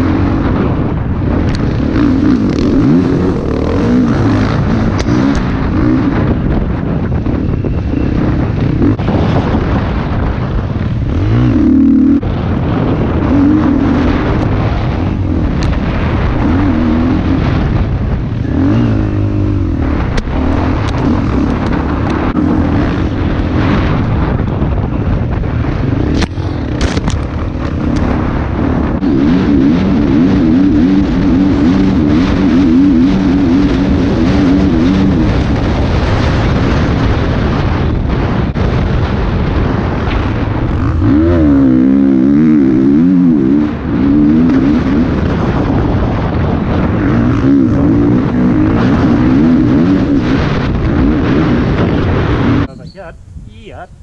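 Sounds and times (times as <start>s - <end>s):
dirt bike engine revving: 0.0s - 52.9s
wind noise: 0.0s - 54.0s.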